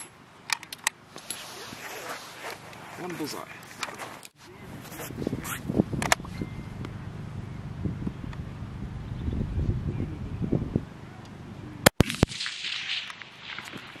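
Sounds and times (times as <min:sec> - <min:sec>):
wind buffeting microphone: 0:04.5 - 0:11.8.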